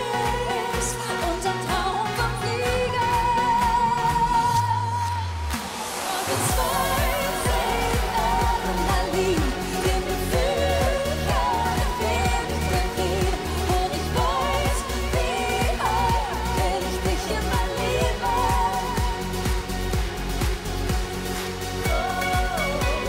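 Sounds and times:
woman singing into a microphone: 0.0s - 5.4s, 6.0s - 19.9s, 21.8s - 23.0s
driving dance beat: 0.0s - 23.0s.

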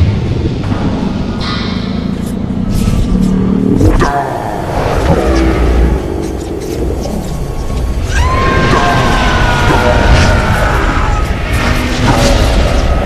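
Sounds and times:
dramatic music score: 0.0s - 13.0s
subway train rumbling: 0.0s - 13.0s.

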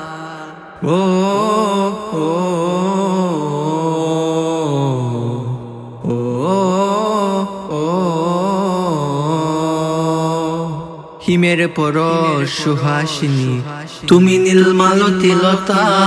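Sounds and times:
layered male vocal humming: 14.1s - 16.0s.

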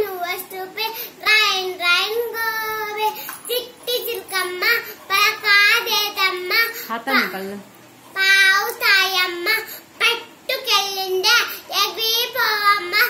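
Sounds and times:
girl singing unaccompanied: 0.0s - 7.4s, 8.1s - 13.0s.

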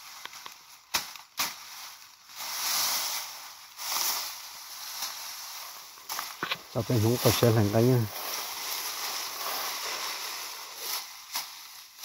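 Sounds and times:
dry grass rustling: 0.0s - 12.0s.

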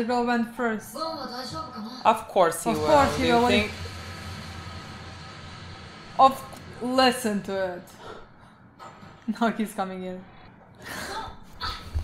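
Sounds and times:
steady low hum: 2.3s - 11.4s.

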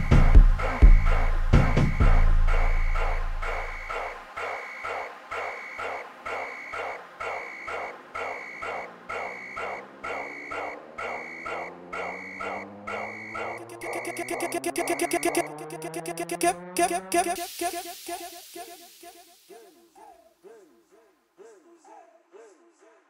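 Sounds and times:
rapid stutter: 13.5s - 19.4s
rising tone: 13.6s - 19.3s
short repeating stabs: 13.6s - 19.4s
electronic dance music: 13.6s - 19.8s.

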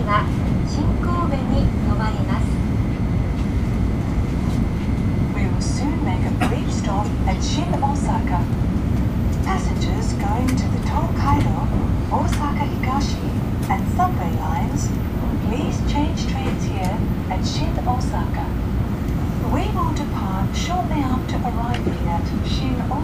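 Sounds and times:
indistinct passenger voices: 0.0s - 23.0s
train cabin low rumble: 0.0s - 23.0s.

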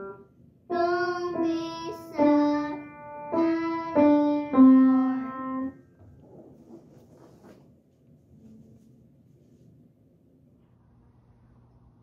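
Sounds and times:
piano notes: 0.0s - 5.9s.

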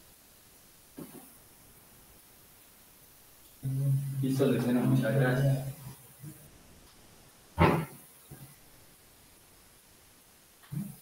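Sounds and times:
short sharp vocal sound: 7.6s - 8.0s.

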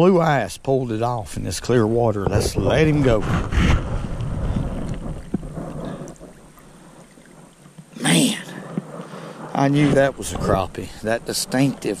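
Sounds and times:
wind rumbling on microphone: 1.1s - 12.0s
water sloshing: 1.8s - 12.0s.

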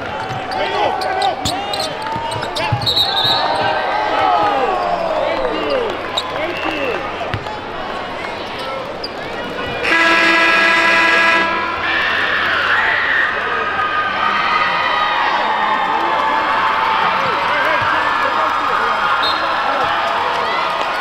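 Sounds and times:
crowd murmur: 0.0s - 21.0s
arena horn blare: 9.8s - 12.6s.

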